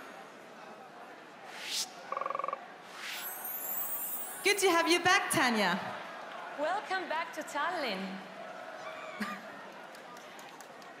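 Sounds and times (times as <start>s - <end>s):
faint high falling sweep: 1.4s - 2.1s
whoosh: 1.4s - 2.1s, 2.9s - 4.4s.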